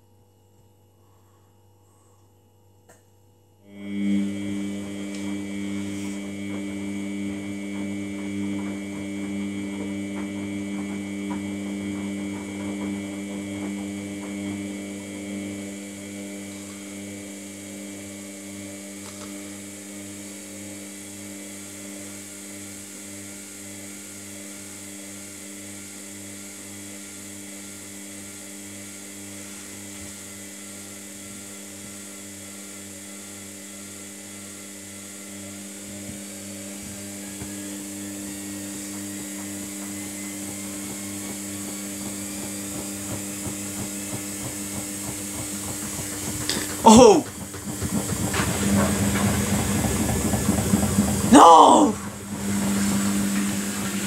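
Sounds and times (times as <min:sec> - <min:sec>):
washing machine motor hum: 0:03.6 - 0:54.0.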